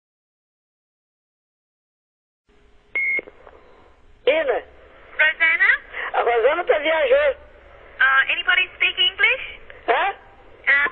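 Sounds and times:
telephone line hiss and hum: 2.5 - 10.9.

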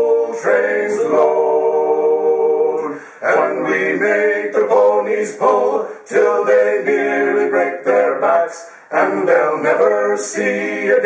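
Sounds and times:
men singing a cappella harmony: 0.0 - 11.0.

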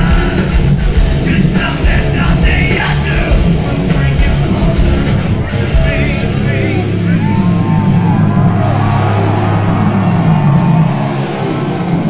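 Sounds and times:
metal band playing live: 0.0 - 12.0.

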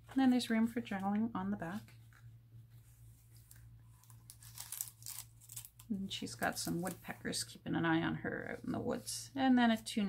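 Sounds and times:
low steady hum: 0.0 - 10.0
paper and card rustling: 1.7 - 7.2.

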